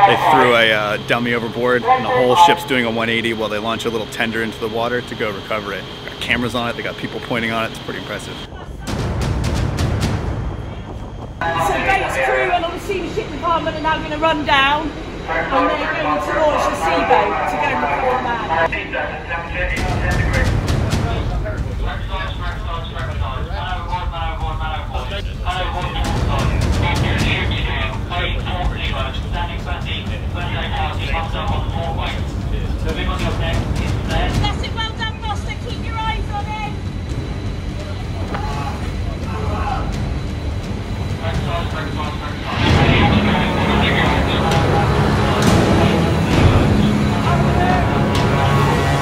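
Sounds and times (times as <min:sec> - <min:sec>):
indistinct voices: 0:00.0 - 0:09.1, 0:10.6 - 0:49.0
ship noise on deck: 0:09.6 - 0:49.0.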